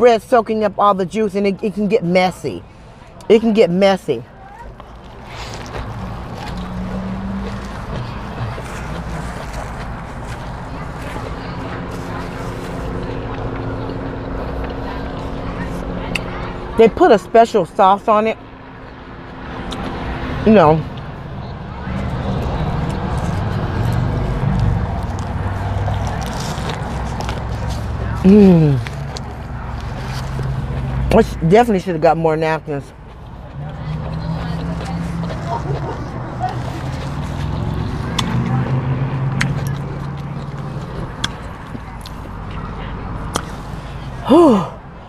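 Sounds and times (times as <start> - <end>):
biting and chewing burger: 4.4 - 16.6, 18.8 - 21.2, 22.0 - 31.4, 32.8 - 44.9
person humming mmm: 44.2 - 44.8.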